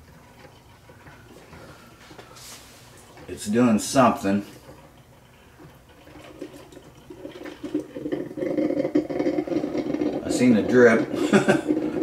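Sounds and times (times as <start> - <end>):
coffee maker gurgling: 0.0 - 12.0.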